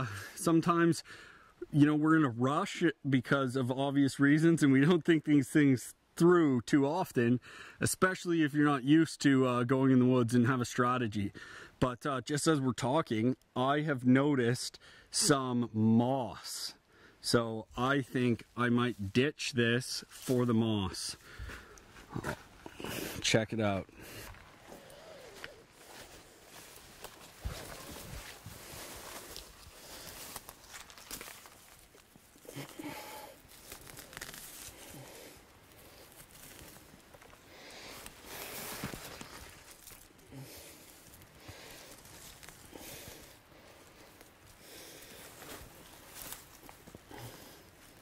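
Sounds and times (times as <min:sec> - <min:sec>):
moss being pulled up: 0:24.0 - 0:48.0
rustling through branches: 0:24.0 - 0:48.0.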